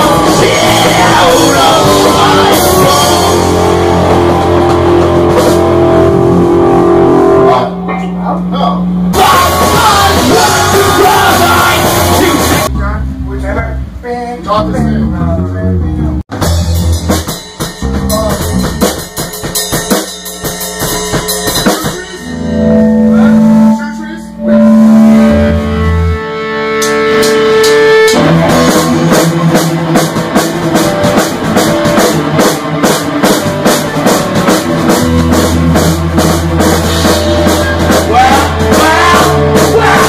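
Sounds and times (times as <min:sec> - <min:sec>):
bass guitar: 0:00.0 - 0:40.0
distorted electric guitars: 0:00.0 - 0:40.0
drum kit: 0:00.0 - 0:40.0
cymbals: 0:16.4 - 0:26.1.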